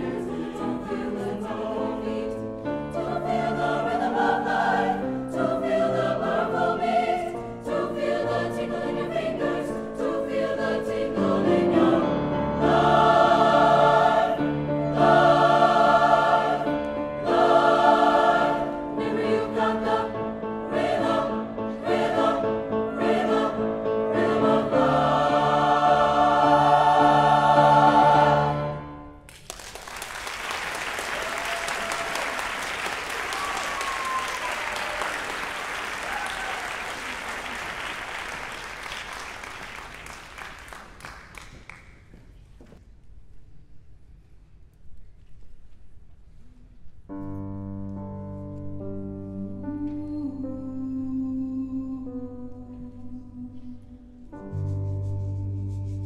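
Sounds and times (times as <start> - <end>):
mixed choir singing: 0.0 - 29.0
piano: 0.0 - 56.0
audience applause: 29.3 - 42.0.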